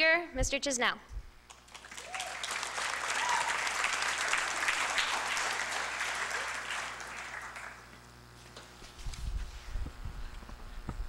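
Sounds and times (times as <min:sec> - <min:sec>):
audience applauding: 0:01.5 - 0:08.0.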